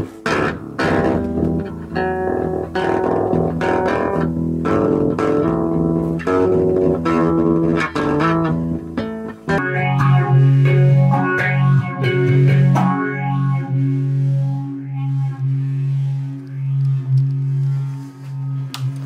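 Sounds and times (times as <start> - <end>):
electric guitar low chord: 0.0 - 19.0
electric guitar picking notes: 0.0 - 19.0.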